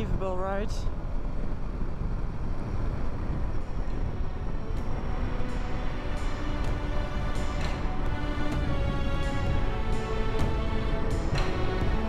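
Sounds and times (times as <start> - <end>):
road noise: 0.0 - 12.0
motorcycle engine running: 0.9 - 5.2.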